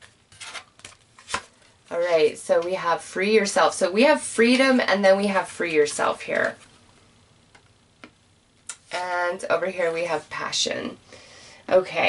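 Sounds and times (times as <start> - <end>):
cards rustling: 0.0 - 1.7.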